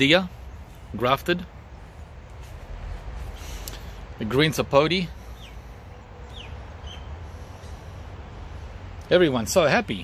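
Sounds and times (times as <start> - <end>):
steady low rumble: 0.0 - 9.5.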